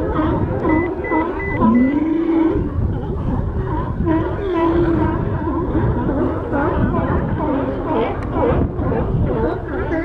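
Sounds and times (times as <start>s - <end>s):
sea lions barking: 0.0s - 10.0s.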